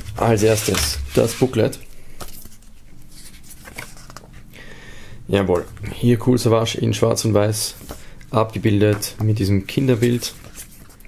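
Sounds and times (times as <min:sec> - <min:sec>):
paper rustling: 0:00.0 - 0:04.4, 0:09.8 - 0:11.0.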